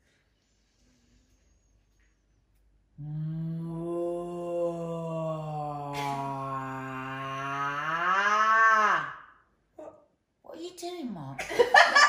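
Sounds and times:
woman chanting long low note: 3.0 - 8.0.

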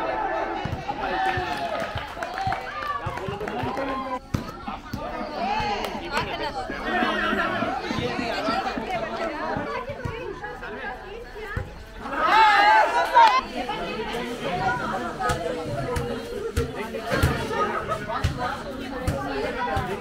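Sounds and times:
many voices talking and calling out: 0.0 - 20.0
loud shout: 12.0 - 13.4.

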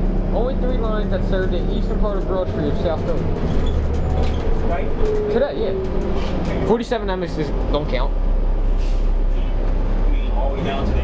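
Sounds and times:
bus engine rumble: 0.0 - 11.0
road noise: 0.0 - 11.0.

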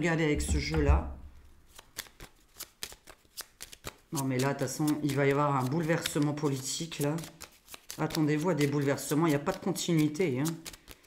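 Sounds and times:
cards being shuffled: 0.4 - 11.0.

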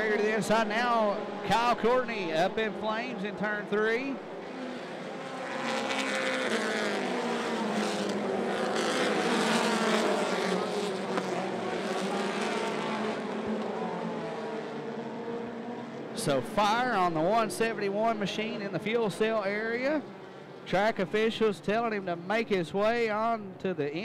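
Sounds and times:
race car engines: 0.0 - 24.0.

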